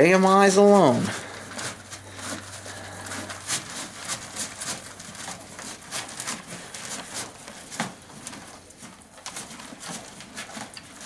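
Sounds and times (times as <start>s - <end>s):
horse chewing feed: 0.6s - 11.0s.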